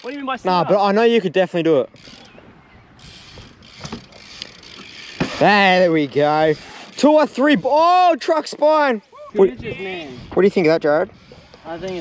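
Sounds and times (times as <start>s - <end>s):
bike tyres rolling on concrete: 3.0s - 8.6s
bike knocking onto ledge: 3.8s - 4.2s, 5.1s - 5.5s.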